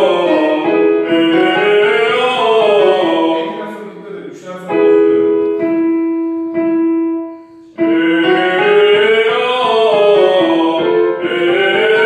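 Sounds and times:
man singing vocal exercise: 0.0s - 5.0s, 7.8s - 12.0s
piano notes struck and held: 0.0s - 12.0s.

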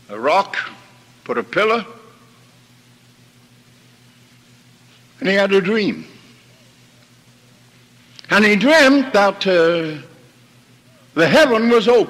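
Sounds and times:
recording hiss: 0.0s - 12.0s.

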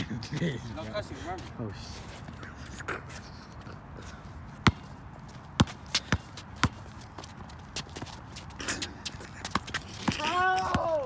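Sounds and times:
basketball bouncing on concrete: 4.6s - 4.9s, 5.6s - 8.2s, 9.1s - 11.0s.

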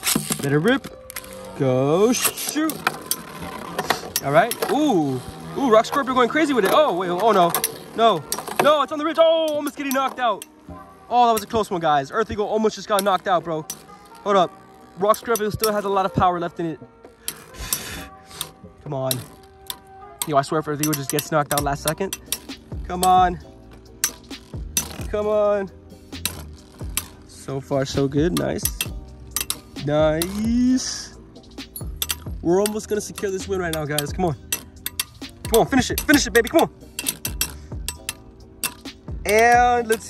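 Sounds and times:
spinning tops grinding on plastic: 0.0s - 40.0s
spinning tops clicking together: 20.8s - 25.1s, 25.9s - 27.3s, 28.0s - 30.4s, 31.4s - 39.1s.

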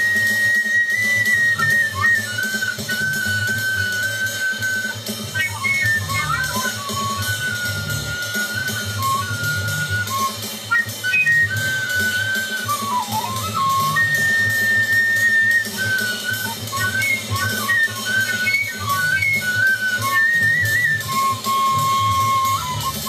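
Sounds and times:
bamboo flute improvising: 0.0s - 23.0s
jazz bass and drums: 1.0s - 23.0s.

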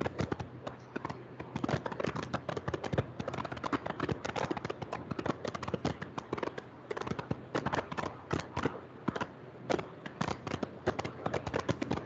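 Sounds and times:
calculator keys tapping: 0.0s - 12.0s.

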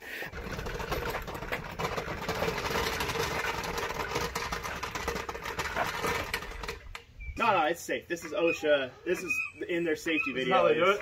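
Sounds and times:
small wheels rolling over asphalt: 0.2s - 7.1s.

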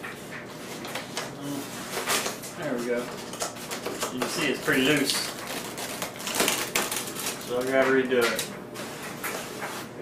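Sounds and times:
newspaper crackling: 2.0s - 8.4s.

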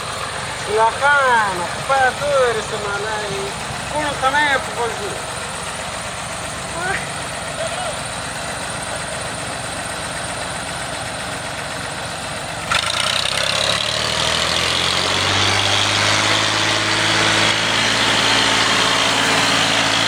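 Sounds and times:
tractor diesel engine running: 0.0s - 20.0s.

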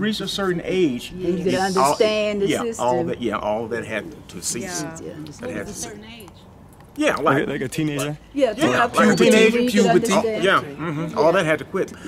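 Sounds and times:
men's soft conversation: 0.0s - 12.0s.

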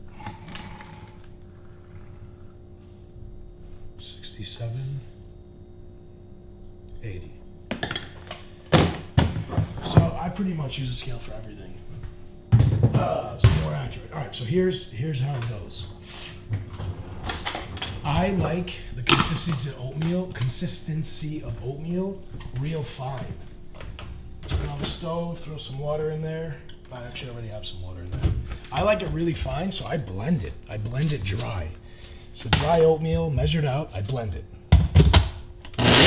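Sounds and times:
steady background hum: 0.0s - 36.0s.

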